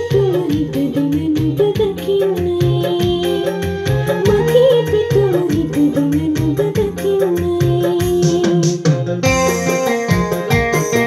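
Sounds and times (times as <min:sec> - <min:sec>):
electronic keyboard melody with backing: 0:00.0 - 0:11.0.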